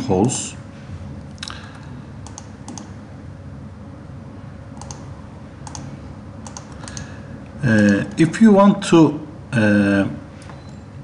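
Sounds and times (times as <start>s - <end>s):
computer mouse clicks: 2.2s - 2.9s, 4.8s - 7.1s.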